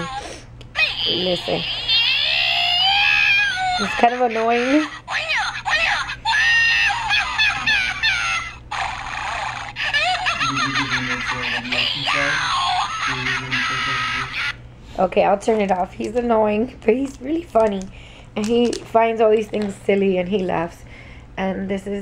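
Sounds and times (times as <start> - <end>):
squeaky warbling toy voice: 0.8 - 14.6.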